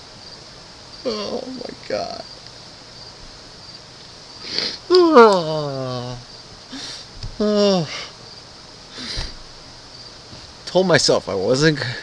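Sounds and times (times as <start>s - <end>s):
man sobbing: 1.0s - 1.8s, 4.6s - 8.2s
man wailing: 1.1s - 2.1s, 4.9s - 8.1s.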